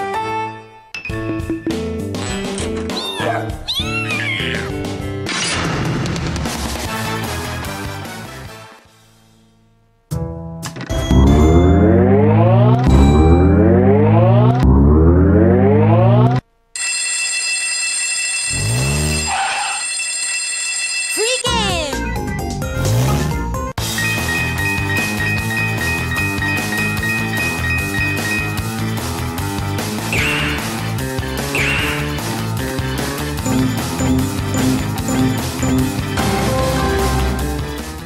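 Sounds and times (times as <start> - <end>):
game music: 0.0 - 16.6, 18.5 - 19.8, 21.3 - 38.0
cartoon cat meowing: 2.9 - 4.8
electronic bell ringing: 10.9 - 14.6, 16.8 - 21.7, 23.9 - 28.9, 33.5 - 37.4.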